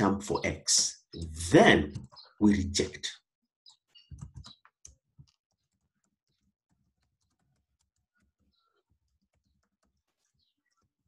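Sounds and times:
faint keyboard typing: 3.9 - 11.0.

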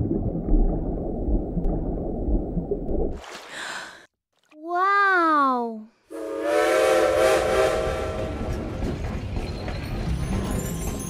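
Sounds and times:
steam train whistle: 6.1 - 8.7
train rumble: 6.5 - 11.0.

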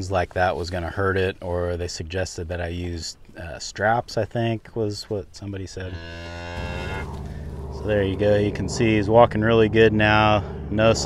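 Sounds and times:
cow mooing: 5.9 - 7.9.

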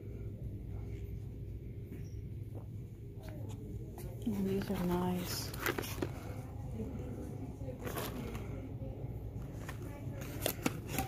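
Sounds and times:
low store hum: 0.0 - 11.0
plastic packaging crinkling: 4.6 - 6.4.

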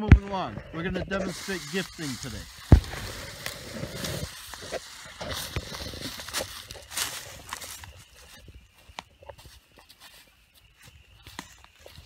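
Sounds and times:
dry leaves crackling and rustling: 1.1 - 12.0
footsteps through leaves: 1.1 - 12.0.

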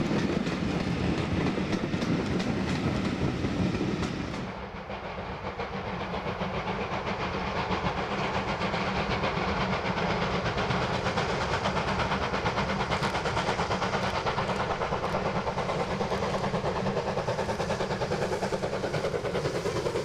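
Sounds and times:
steam locomotive exhaust beats: 0.0 - 20.0
train wheels clicking over rail joints: 0.0 - 20.0.

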